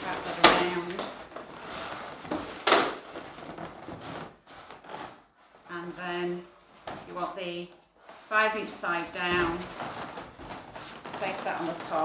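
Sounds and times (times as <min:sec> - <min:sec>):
balloons rubbing together: 0:00.0 - 0:12.0.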